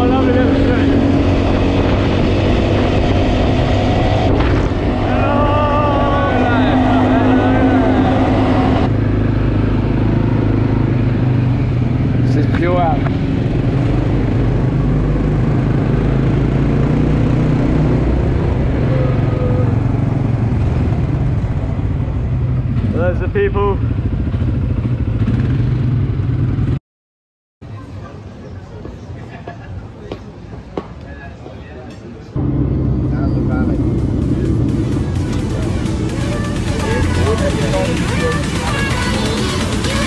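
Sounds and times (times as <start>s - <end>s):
quad bike engine drone: 0.0s - 26.8s, 32.4s - 40.0s
road and wind noise: 0.0s - 26.8s, 27.6s - 40.0s
voices: 4.9s - 8.9s, 27.6s - 40.0s.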